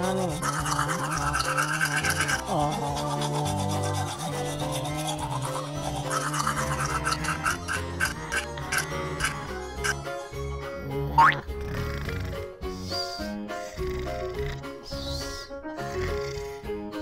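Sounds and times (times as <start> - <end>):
toothbrush scrubbing teeth: 0.0 - 10.0
background music: 0.0 - 17.0.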